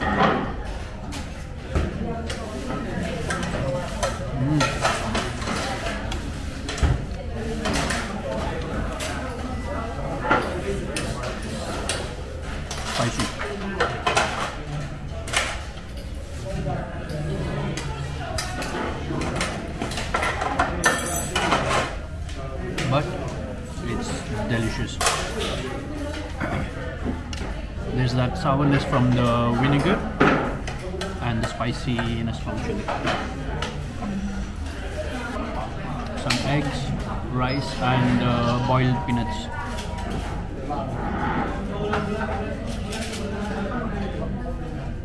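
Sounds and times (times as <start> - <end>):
diners' voices: 0.0 - 45.0
cutlery clinking on plates: 18.4 - 22.0.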